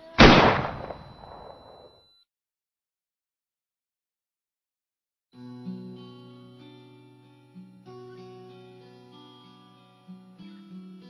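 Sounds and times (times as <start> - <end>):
loud bang with echo: 0.2 - 1.8.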